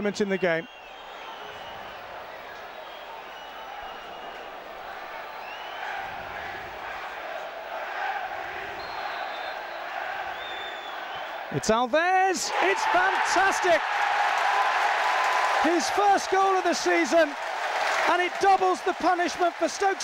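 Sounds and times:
stadium crowd hubbub: 0:00.0 - 0:11.7, 0:12.4 - 0:20.0.

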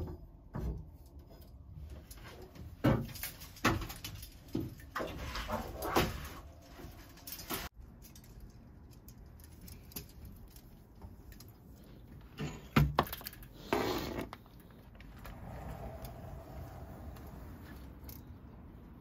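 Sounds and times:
laundry rustling: 0:01.9 - 0:07.8.

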